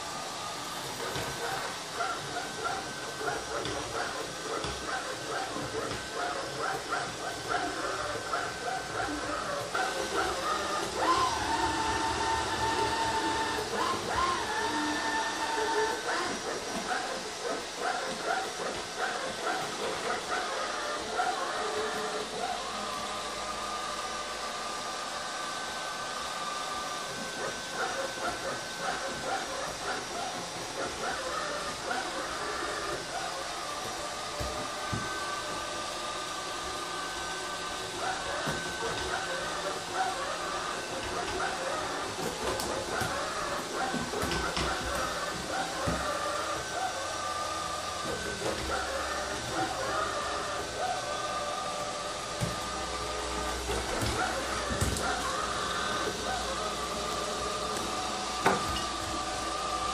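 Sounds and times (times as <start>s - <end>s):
robot vacuum cleaner motor whir: 0.0s - 59.9s.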